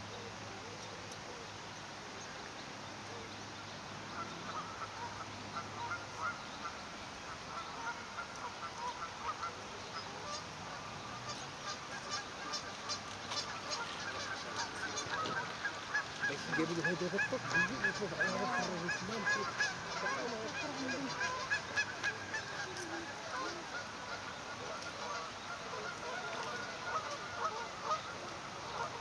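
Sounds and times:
cygnets peeping: 11.2 - 28.0.

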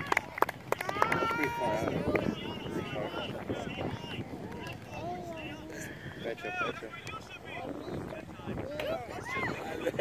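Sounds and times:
voices shouting outdoors: 0.0 - 10.0.

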